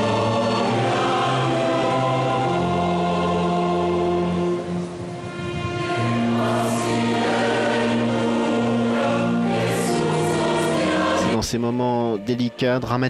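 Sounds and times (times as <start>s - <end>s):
choir singing a hymn: 0.0s - 13.0s
man speaking: 11.2s - 13.0s.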